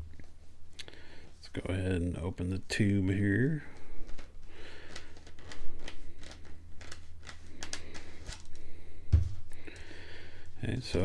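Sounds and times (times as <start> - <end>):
plastic clicks and scrapes: 4.1 - 8.6
sharp thump: 9.1 - 9.4.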